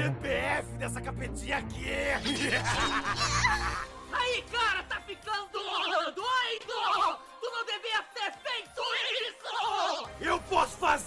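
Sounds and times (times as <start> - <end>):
background music with bass line: 0.0 - 4.2
man laughing: 2.1 - 4.0.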